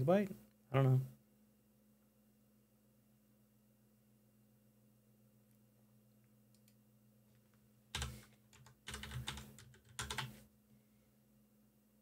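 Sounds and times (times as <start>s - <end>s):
computer keyboard typing: 7.9s - 10.4s.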